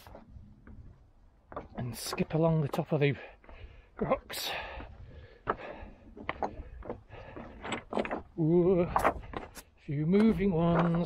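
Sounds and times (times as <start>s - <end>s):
running footsteps on scree: 0.0s - 11.0s
stones clinking underfoot: 0.0s - 11.0s.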